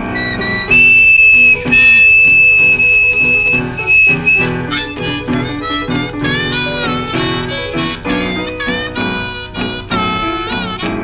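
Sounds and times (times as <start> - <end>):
band backing: 0.0 - 11.0
blues harmonica solo: 0.0 - 11.0.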